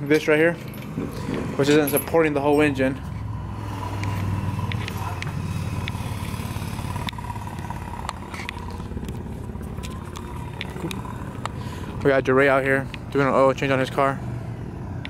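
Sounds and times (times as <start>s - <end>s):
vehicle engine humming: 0.0s - 15.0s.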